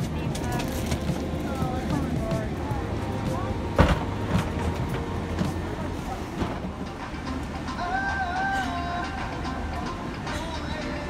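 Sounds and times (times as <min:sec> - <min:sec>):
airliner cabin hum: 0:00.0 - 0:11.0
passengers' voices: 0:00.0 - 0:11.0.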